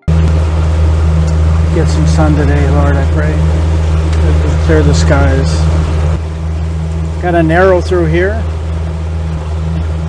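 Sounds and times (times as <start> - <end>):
boat motor drone: 0.0 - 10.0.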